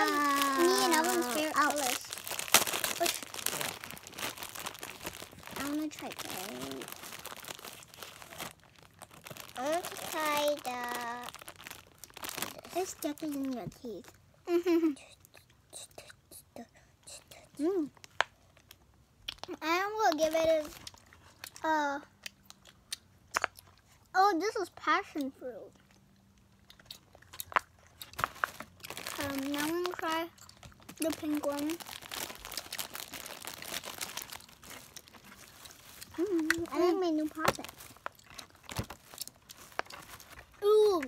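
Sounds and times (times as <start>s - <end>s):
children chewing candy: 0.0s - 24.1s, 25.1s - 41.0s.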